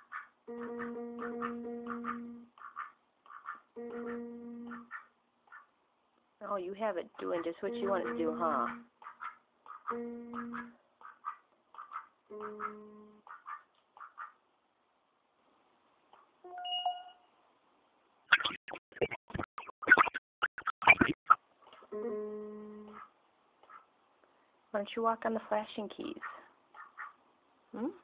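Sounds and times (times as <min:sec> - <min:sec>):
duck calls: 0:00.0 - 0:05.7, 0:07.8 - 0:14.4, 0:26.7 - 0:27.2
toy keyboard notes: 0:00.5 - 0:02.5, 0:03.8 - 0:04.8, 0:09.9 - 0:10.7.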